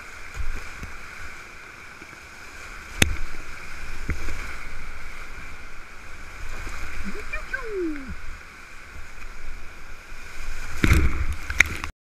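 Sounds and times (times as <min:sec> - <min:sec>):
whitewater rapids rushing: 0:02.7 - 0:10.2
person crying out: 0:07.4 - 0:08.2.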